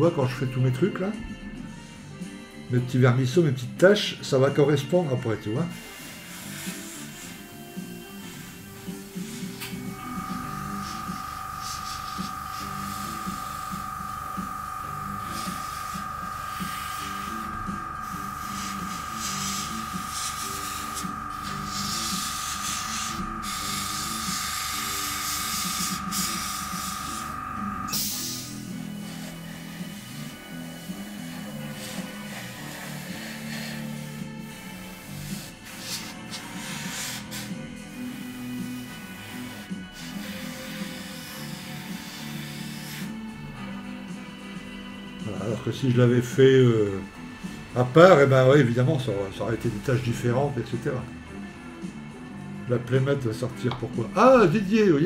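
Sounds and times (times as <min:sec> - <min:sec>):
background music: 0:00.0 - 0:55.0
airbrush hissing with whistling tone: 0:05.7 - 0:50.3.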